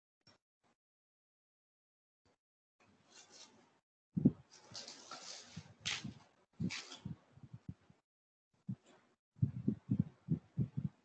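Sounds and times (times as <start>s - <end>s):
rustling noise: 3.0s - 7.7s.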